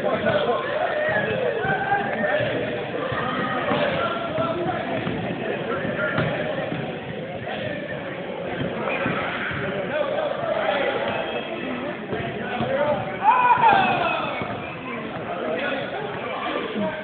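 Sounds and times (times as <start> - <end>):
people talking over one another: 0.0 - 17.0.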